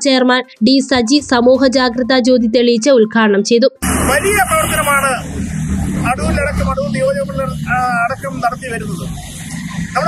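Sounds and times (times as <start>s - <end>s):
man speaking: 3.8s - 5.4s, 6.0s - 9.1s
road traffic rumble: 3.8s - 10.0s.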